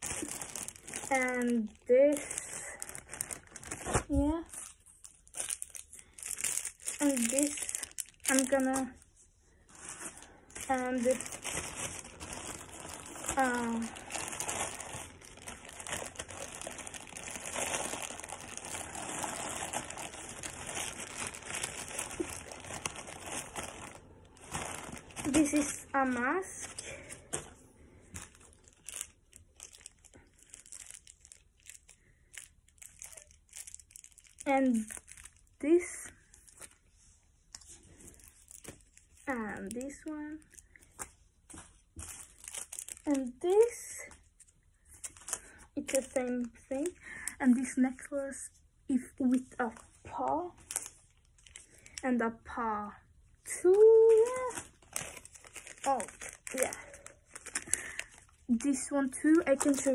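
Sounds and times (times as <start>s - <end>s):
plastic packaging crinkling: 0.0s - 36.9s, 37.5s - 48.0s, 49.0s - 52.1s, 53.5s - 59.9s.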